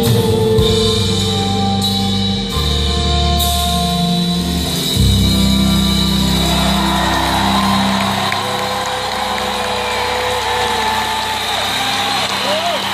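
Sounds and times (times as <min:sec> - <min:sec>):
audience applauding and cheering: 0:05.7 - 0:12.9
whistles and whoops: 0:06.4 - 0:12.9.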